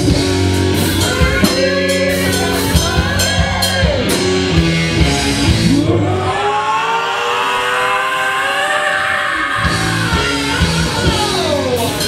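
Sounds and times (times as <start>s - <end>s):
live rock band: 0.0s - 12.0s.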